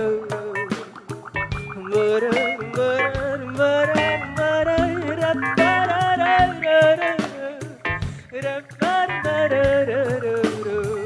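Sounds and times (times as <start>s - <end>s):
live band playing pop song: 0.0s - 11.0s.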